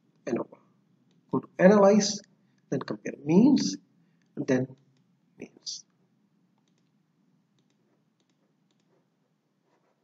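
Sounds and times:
faint computer mouse clicks: 6.6s - 7.0s, 7.6s - 9.0s.

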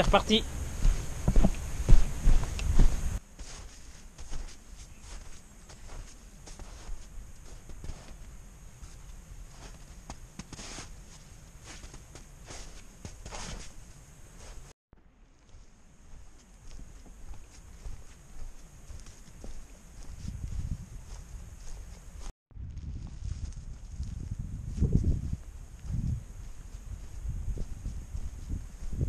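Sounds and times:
footsteps on forest trail: 0.0s - 14.7s, 15.4s - 29.0s
low rumble on microphone: 0.4s - 3.2s, 20.0s - 21.8s, 22.5s - 29.0s.

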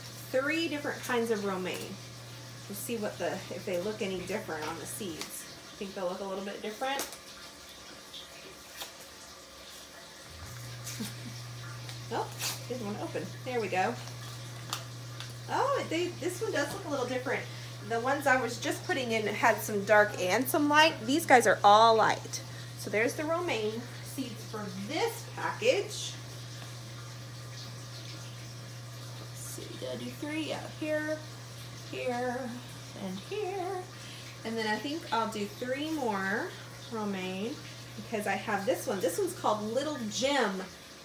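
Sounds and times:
pump humming: 0.0s - 41.0s
water trickling: 0.0s - 41.0s.

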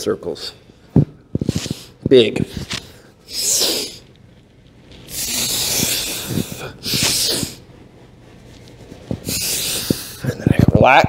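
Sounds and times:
man breathing forcefully: 5.1s - 7.7s, 9.1s - 10.2s.

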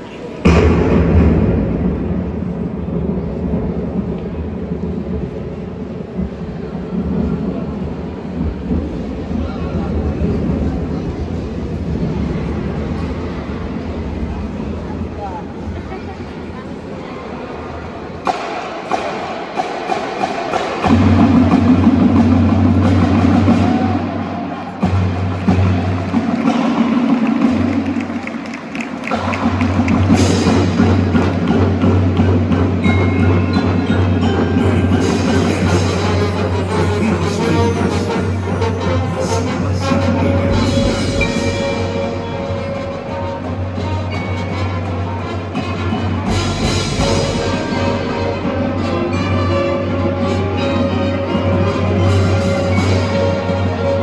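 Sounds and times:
loud percussion hit: 0.4s - 5.3s, 29.1s - 44.4s, 45.6s - 49.4s
band playing sustained low chords: 30.1s - 54.0s.

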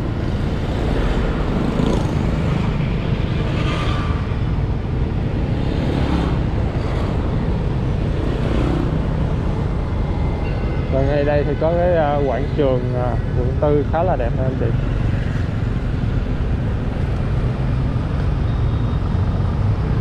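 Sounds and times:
city street traffic: 0.0s - 20.0s.

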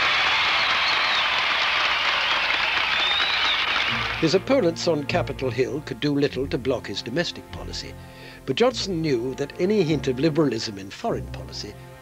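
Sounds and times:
crowd applauding: 0.0s - 4.7s
crowd cheering: 0.0s - 4.7s.

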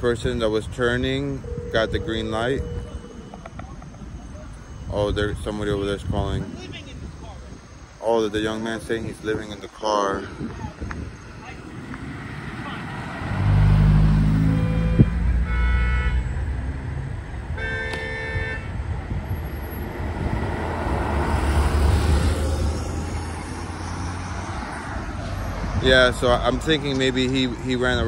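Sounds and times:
car horn: 0.9s - 3.7s, 14.3s - 16.6s, 17.5s - 18.9s
car engine passing: 11.1s - 17.5s, 19.0s - 28.0s.

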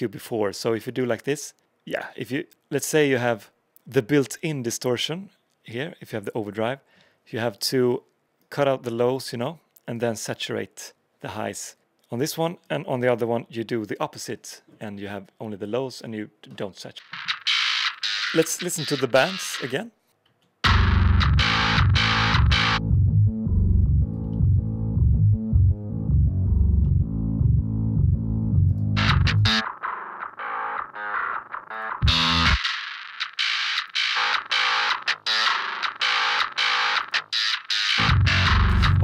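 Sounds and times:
distorted bass riff: 17.0s - 19.7s, 20.6s - 39.0s.

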